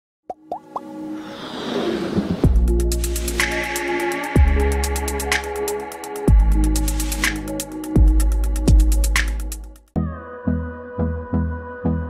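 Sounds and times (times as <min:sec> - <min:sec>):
quick pops gliding up in pitch: 0:00.3 - 0:00.9
rising whoosh: 0:01.0 - 0:05.5.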